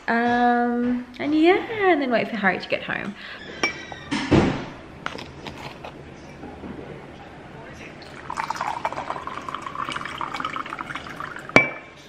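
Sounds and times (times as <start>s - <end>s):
water pouring into a glass: 7.9s - 11.7s.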